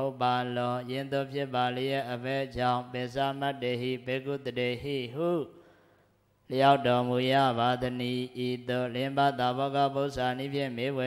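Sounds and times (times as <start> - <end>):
man chanting: 0.0 - 5.6, 6.4 - 11.0.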